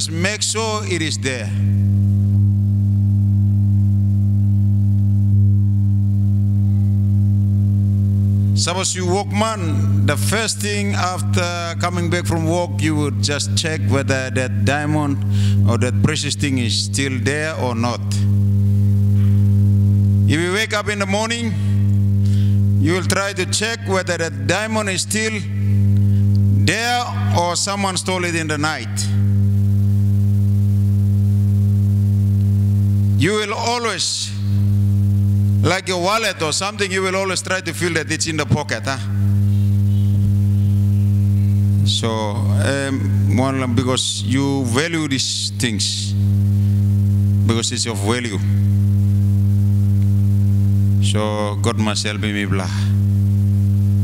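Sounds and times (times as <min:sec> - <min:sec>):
electrical hum with buzzing overtones: 0:00.0 - 0:54.0
loud steady low drone: 0:00.0 - 0:54.0.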